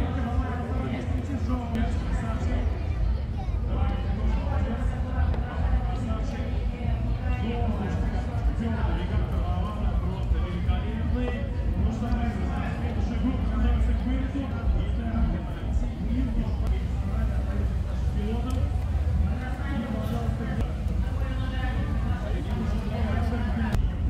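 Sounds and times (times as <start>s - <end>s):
background chatter of voices: 0.0s - 24.0s
steady low rumble: 0.0s - 24.0s.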